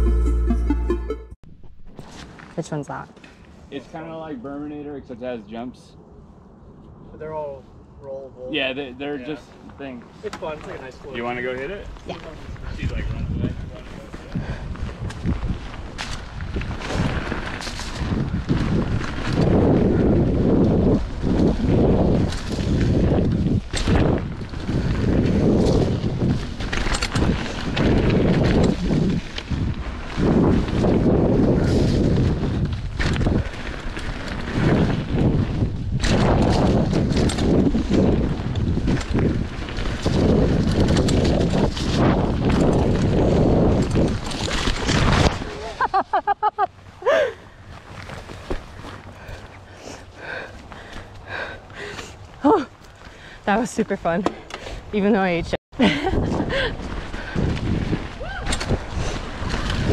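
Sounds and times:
bike tyres rolling over dirt: 8.8s - 59.9s
wind rushing over microphone: 9.0s - 59.9s
bike knocking and rattling: 10.2s - 46.0s, 47.7s - 59.9s
bike crash: 15.9s - 46.0s.

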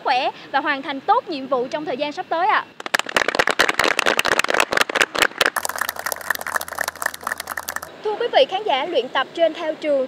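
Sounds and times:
people applauding: 2.8s - 7.9s
low steady hum: 5.3s - 8.1s.

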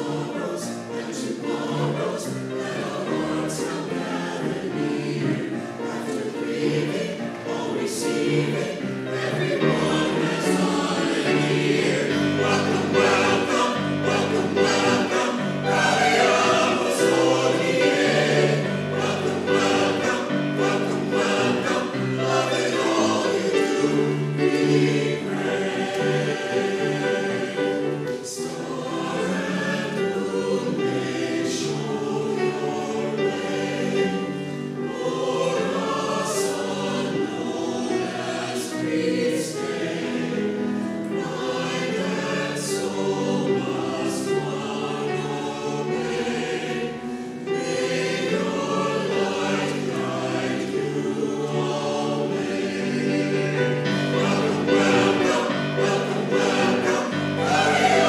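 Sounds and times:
mixed choir singing in parts: 0.0s - 58.0s.

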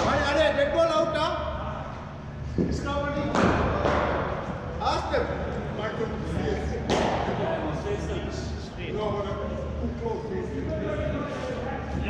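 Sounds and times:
cricket ball impact echoing: 3.2s - 4.4s, 6.8s - 7.4s.

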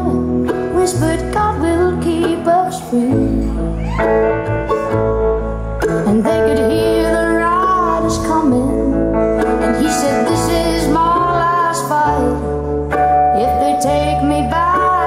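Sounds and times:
woman singing: 0.0s - 4.9s, 5.8s - 15.0s
electric guitar: 0.0s - 15.0s
mandolin: 0.0s - 15.0s
upright bass: 0.0s - 15.0s.

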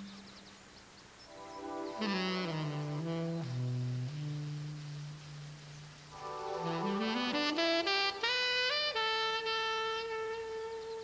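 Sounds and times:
solo wind instrument note: 1.7s - 11.0s.

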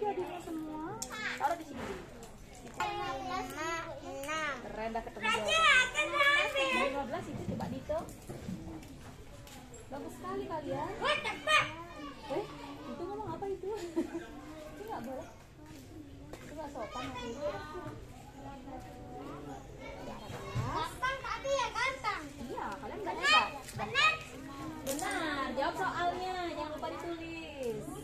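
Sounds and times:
children chattering: 0.0s - 28.0s.

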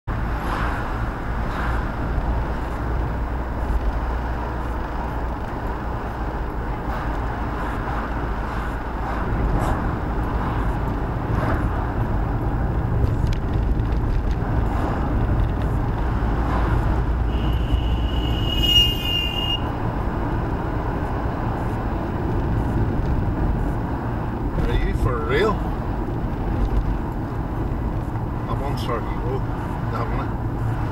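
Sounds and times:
car interior road rumble: 0.1s - 30.9s.

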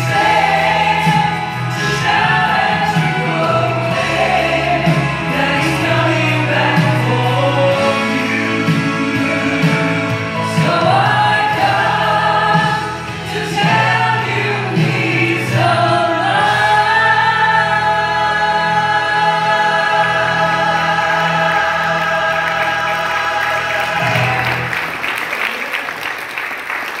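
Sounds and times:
musical accompaniment: 0.0s - 27.0s.

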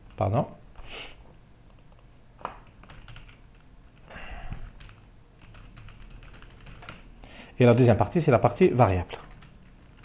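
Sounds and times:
computer keyboard typing: 1.7s - 7.0s, 9.1s - 10.0s.

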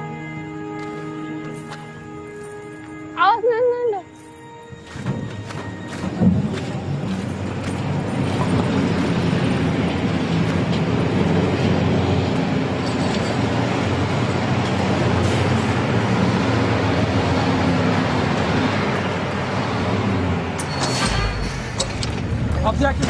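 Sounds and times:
truck engines running: 4.1s - 23.0s.

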